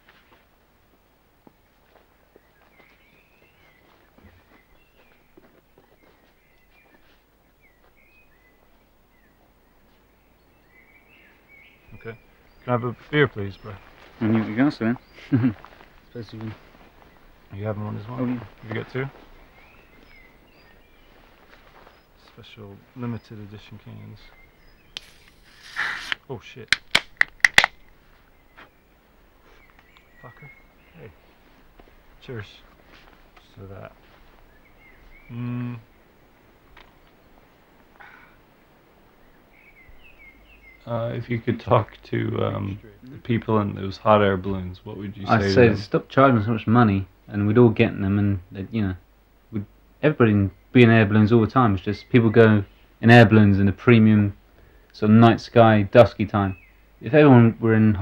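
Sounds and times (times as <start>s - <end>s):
bird chirping: 2.2s - 31.6s, 32.2s - 36.3s, 39.1s - 46.6s, 55.0s - 58.0s.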